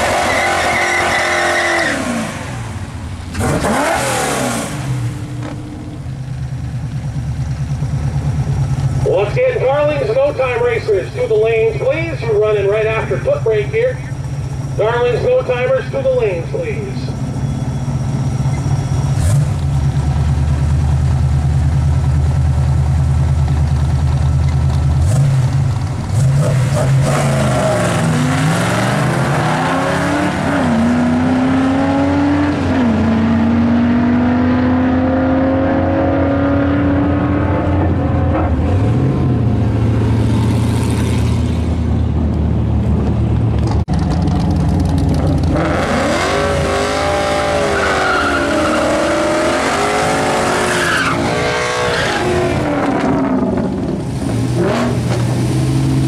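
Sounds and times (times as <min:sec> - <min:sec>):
engines accelerating at full throttle: 0:00.0 - 0:06.4, 0:14.8 - 0:20.6, 0:24.5 - 0:56.0
car engine revving: 0:00.0 - 0:22.6, 0:23.5 - 0:56.0
car engines idling loudly: 0:04.9 - 0:26.2, 0:37.8 - 0:45.9
tyres spinning in a burnout: 0:44.0 - 0:53.4.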